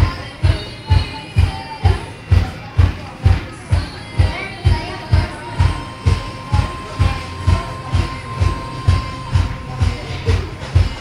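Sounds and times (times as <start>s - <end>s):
music with bass-drum beat: 0.0s - 11.0s.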